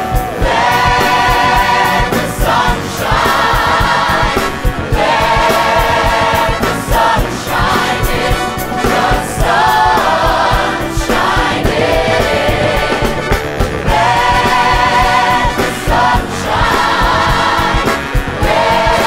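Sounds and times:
choir singing: 0.0 - 19.0
rock band with steady drum beat: 0.0 - 19.0.

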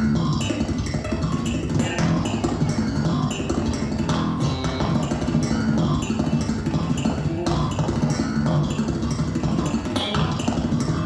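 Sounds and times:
drums: 0.0 - 11.0
electric bass guitar: 0.0 - 11.0.

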